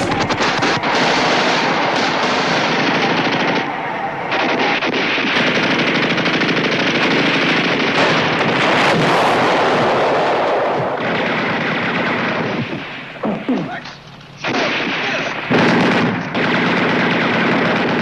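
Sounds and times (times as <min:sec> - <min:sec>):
machine-gun and rifle fire: 0:00.0 - 0:13.8, 0:14.4 - 0:18.0.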